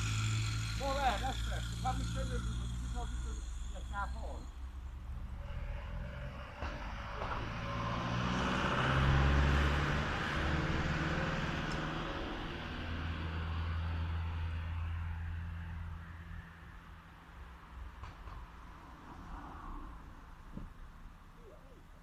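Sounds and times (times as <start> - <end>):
vehicle engine hum: 0.0 - 22.0.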